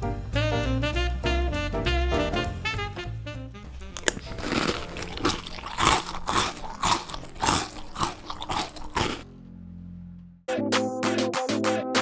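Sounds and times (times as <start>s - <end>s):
chewing crunchy cereal: 3.8s - 9.2s.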